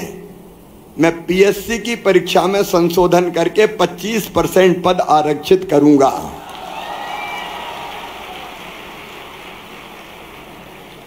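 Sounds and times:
audience applauding: 0:06.4 - 0:11.0.

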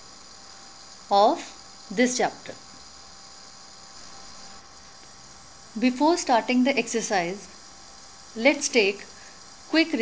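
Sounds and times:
faint electrical hum: 0:00.0 - 0:10.0
steady hiss: 0:00.0 - 0:10.0.

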